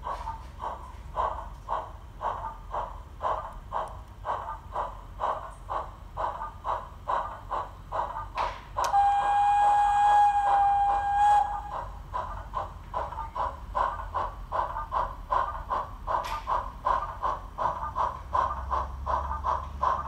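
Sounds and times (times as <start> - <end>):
steam locomotive whistle: 8.8 - 11.9.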